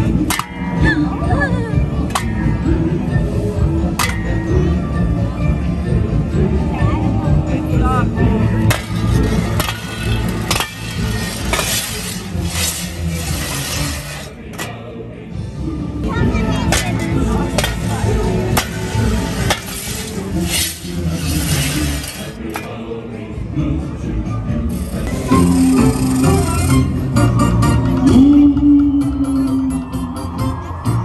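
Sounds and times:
parade music with steady beat: 0:00.0 - 0:14.6, 0:15.3 - 0:31.0
shovels scraping on pavement: 0:08.7 - 0:14.7, 0:16.7 - 0:22.7.

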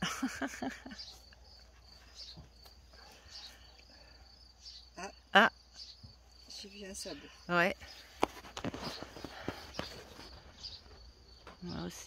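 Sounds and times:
scuffs and knocks: 0:08.0 - 0:11.1.

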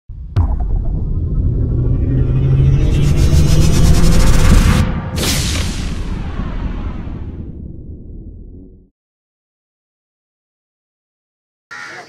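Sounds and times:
deep rumbling drone: 0:00.1 - 0:08.9
sudden impact hit: 0:00.1 - 0:08.9
high shimmering sweep: 0:00.4 - 0:06.1.

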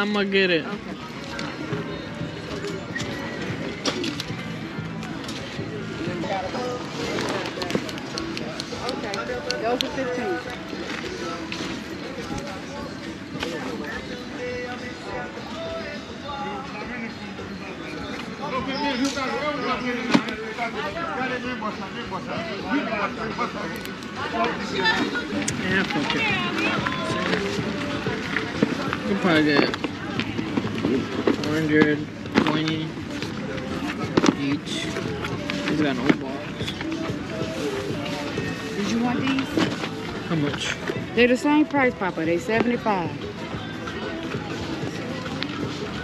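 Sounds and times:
music playing: 0:00.0 - 0:46.0
voices: 0:00.0 - 0:46.0
people talking: 0:16.3 - 0:46.0.

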